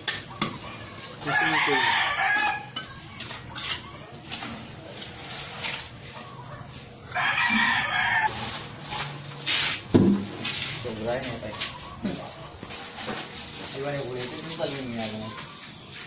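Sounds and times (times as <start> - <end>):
rooster crowing: 1.2 - 2.7, 7.1 - 8.6.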